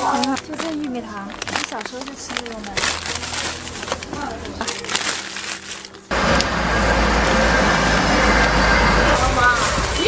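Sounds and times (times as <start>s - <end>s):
loud rushing noise with rumble: 6.1s - 10.0s.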